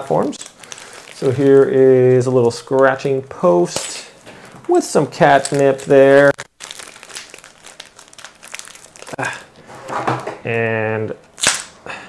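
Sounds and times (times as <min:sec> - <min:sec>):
packaging crinkling: 0:00.2 - 0:09.4.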